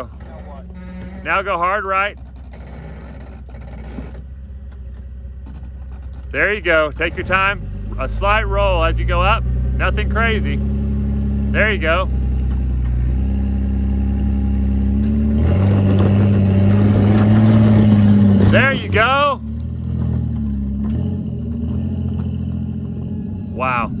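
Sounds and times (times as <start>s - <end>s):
engine crawling at low revs: 0.0s - 24.0s.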